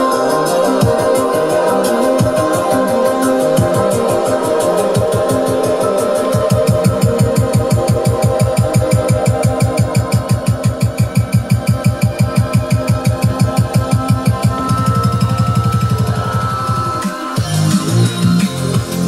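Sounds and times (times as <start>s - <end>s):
chopped repeating bass: 0.0s - 19.0s
electronic dance music: 0.0s - 19.0s.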